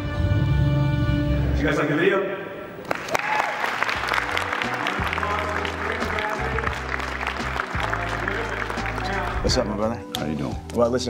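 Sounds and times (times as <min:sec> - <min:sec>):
background music with bass: 0:00.0 - 0:01.9, 0:03.9 - 0:11.0
audience applauding: 0:02.8 - 0:09.7.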